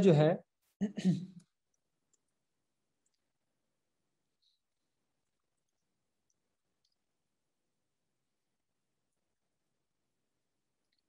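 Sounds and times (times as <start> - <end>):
man coughing: 0.8 - 1.4
faint keyboard clicks: 3.0 - 3.3, 5.2 - 7.1.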